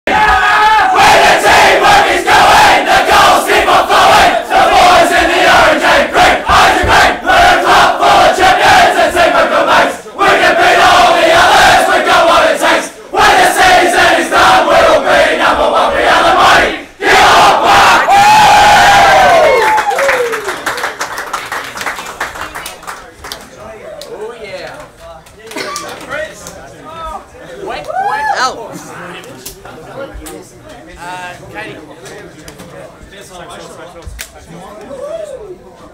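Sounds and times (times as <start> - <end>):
crowd long held shout: 0.1 - 15.3, 16.4 - 20.5, 27.7 - 28.6
crowd singing in unison: 1.0 - 18.0.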